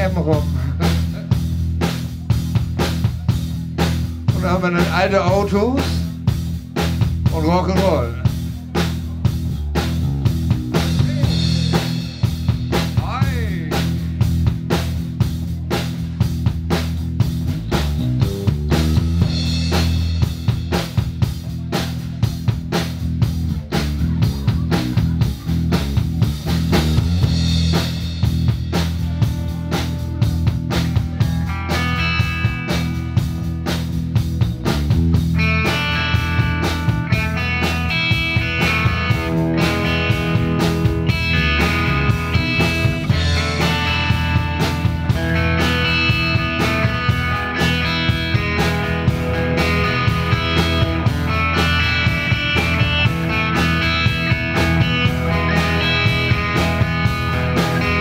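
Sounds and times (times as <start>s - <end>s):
drum kit beat: 0.0s - 58.0s
electric bass: 0.0s - 58.0s
electric guitar notes: 27.0s - 58.0s.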